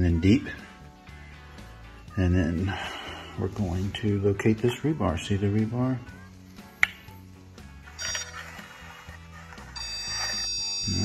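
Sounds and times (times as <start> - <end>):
faint electronic tone: 8.0 - 8.9, 9.5 - 11.0
high-pitched beep: 9.8 - 11.0.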